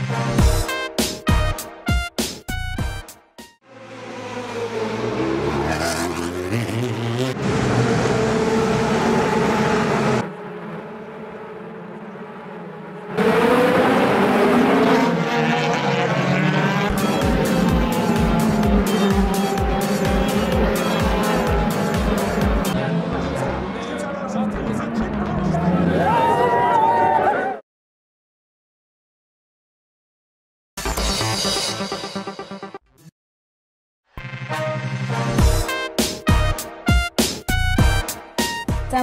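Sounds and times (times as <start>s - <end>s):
racing car engines passing: 3.7s - 27.4s
music with a steady beat: 16.9s - 22.8s, 34.6s - 39.0s.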